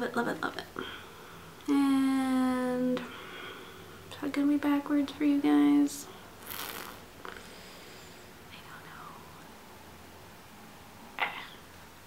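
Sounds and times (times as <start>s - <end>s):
mouth and breath sounds: 6.4s - 8.2s.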